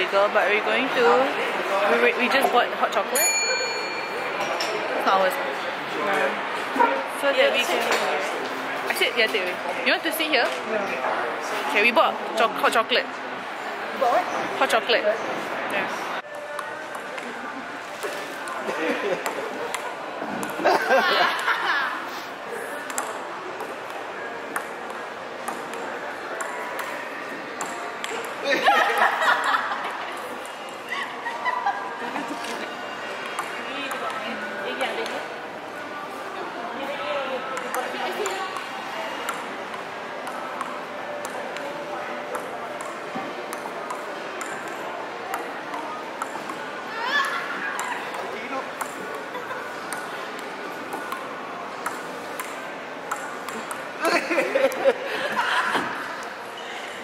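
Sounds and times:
hubbub of public space: 0.0s - 57.0s
steady background noise: 0.0s - 57.0s
table tennis ball clicking: 51.8s - 53.9s.

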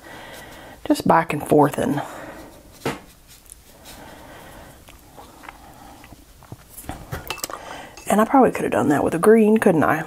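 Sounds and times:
paintbrush brushing: 2.2s - 5.6s
brush clinking on ceramic: 7.2s - 8.2s.

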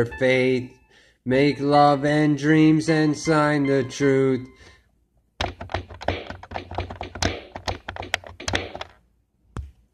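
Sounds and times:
quick taps and clicks: 5.4s - 9.0s.

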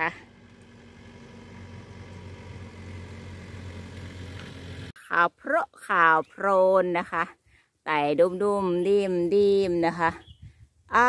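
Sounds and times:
low engine hum: 0.0s - 5.0s.

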